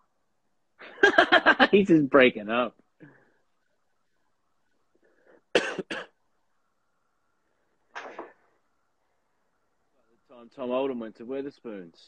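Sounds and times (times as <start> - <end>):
sharp coughs: 5.5 - 6.2.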